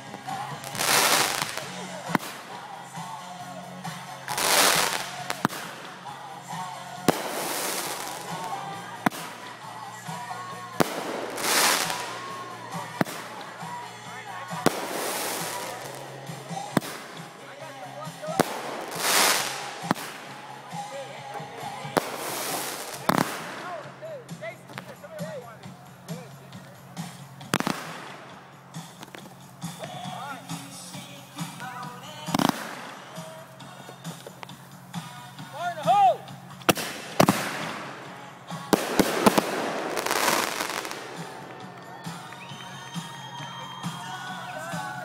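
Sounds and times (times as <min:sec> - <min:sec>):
firework bangs: 0:00.0 - 0:03.1, 0:03.9 - 0:30.7, 0:31.3 - 0:35.7, 0:36.4 - 0:43.2
hissing firework bursts: 0:00.0 - 0:45.0.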